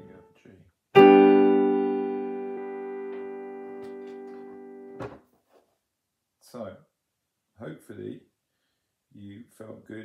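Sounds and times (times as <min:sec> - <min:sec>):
piano chord ringing: 0:01.0 - 0:05.0.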